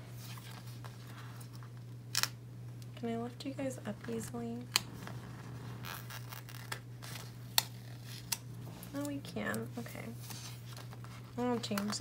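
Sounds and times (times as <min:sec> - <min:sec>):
low hum: 0:02.5 - 0:11.4
paper and sticker rustling: 0:04.8 - 0:12.0.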